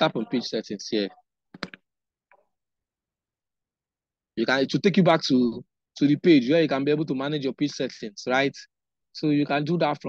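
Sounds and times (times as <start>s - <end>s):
computer mouse clicks: 1.5s - 2.5s.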